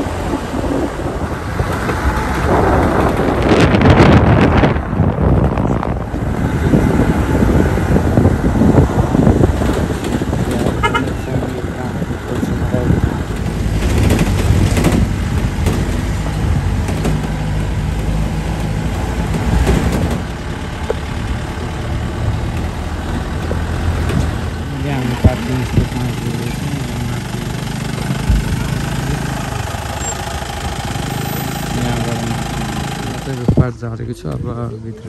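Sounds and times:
car engine and road rumble: 0.0s - 35.0s
wind: 0.0s - 35.0s.

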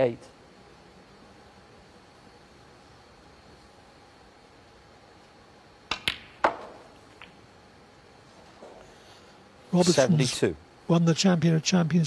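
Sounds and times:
cue striking ball: 5.9s - 7.4s
sharp click of balls colliding: 5.9s - 7.4s.

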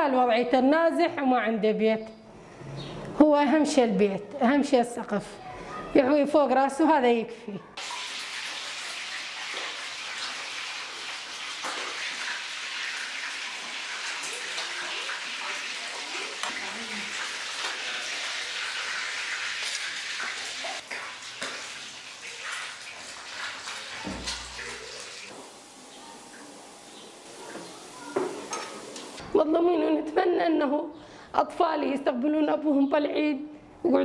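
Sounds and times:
steady hissing kitchen noise: 7.8s - 29.3s
metal utensils clinking on pots: 28.1s - 29.2s.

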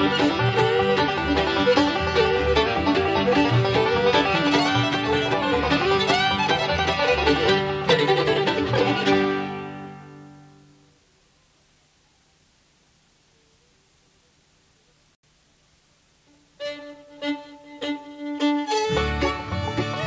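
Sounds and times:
bluegrass band playing: 0.0s - 10.6s, 16.6s - 20.0s.

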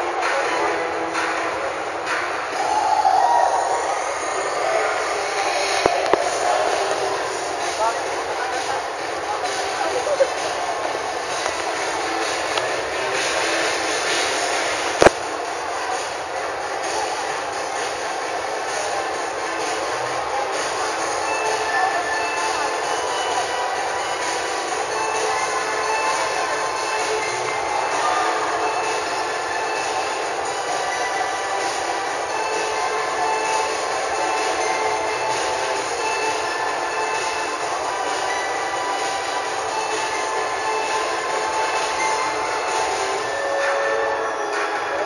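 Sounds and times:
crowd noise: 0.0s - 45.0s.

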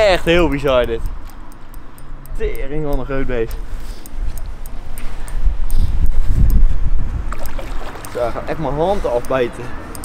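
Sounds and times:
wind rumbling on microphone: 3.2s - 8.5s
fish splashing in water: 7.3s - 8.4s.

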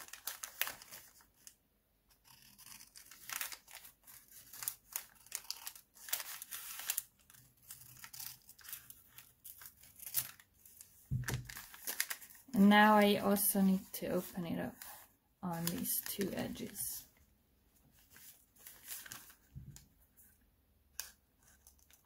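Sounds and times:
paper rustling: 0.0s - 1.6s, 2.2s - 17.0s, 17.8s - 20.4s
scissors snipping paper: 2.1s - 10.4s.

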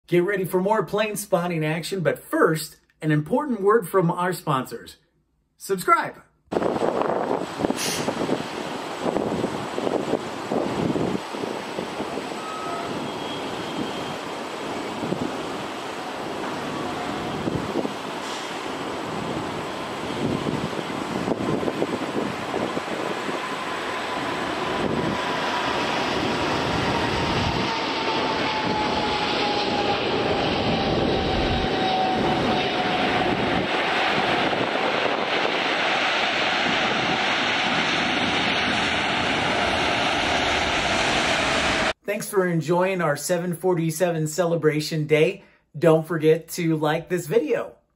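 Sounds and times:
jet engines roaring: 6.5s - 42.0s
whine sliding down in pitch: 12.4s - 14.2s, 26.5s - 33.7s.

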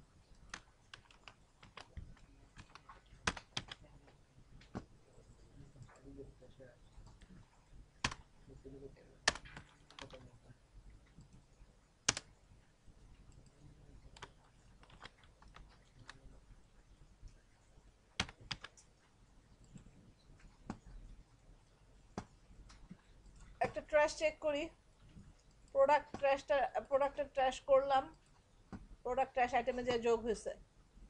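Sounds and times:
computer keyboard typing: 0.2s - 3.9s, 6.9s - 8.3s, 9.2s - 10.4s, 11.1s - 12.4s, 13.1s - 16.4s, 17.0s - 21.1s.

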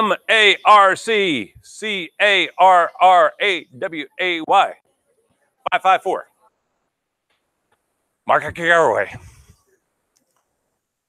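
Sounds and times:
man speaking: 0.0s - 4.8s, 5.7s - 6.2s, 8.3s - 9.4s
faint clicks: 10.1s - 10.6s.

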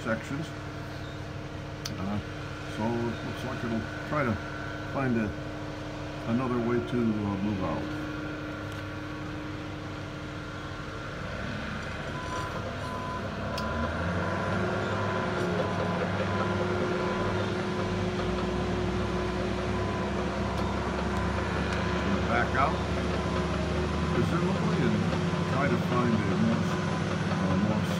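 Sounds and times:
heavy diesel machine engines: 0.0s - 27.9s
reversing alarm beeping: 12.0s - 18.0s, 19.2s - 25.1s.

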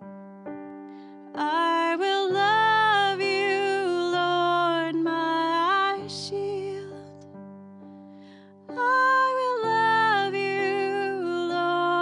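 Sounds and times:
woman singing: 1.4s - 7.2s, 8.7s - 12.0s.

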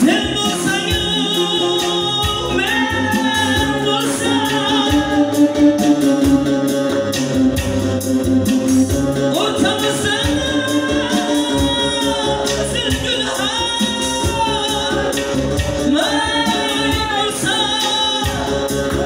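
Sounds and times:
man singing into a microphone: 0.0s - 7.6s, 8.9s - 19.0s.

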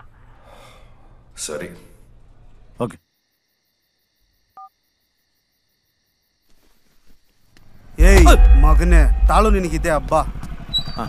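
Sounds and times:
crickets chirring: 2.8s - 8.0s.

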